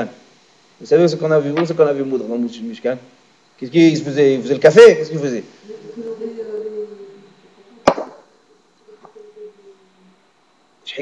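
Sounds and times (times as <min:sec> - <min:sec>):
hand slapping a tabletop: 0:07.8 - 0:08.3.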